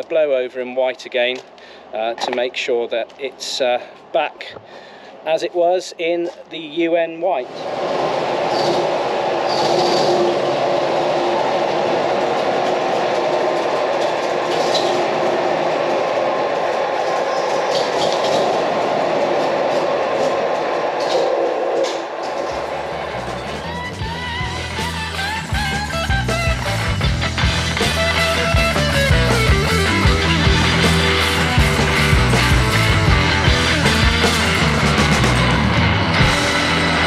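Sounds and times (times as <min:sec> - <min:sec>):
armoured car engine running: 0:22.6 - 0:37.0
rock music with bass and guitar: 0:22.8 - 0:37.0.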